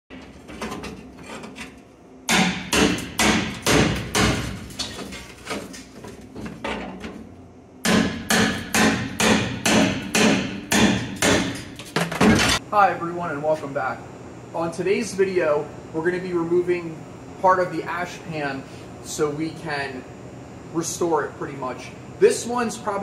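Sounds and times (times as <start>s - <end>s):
hammer on sheet metal: 2.3s - 4.6s, 7.8s - 11.7s.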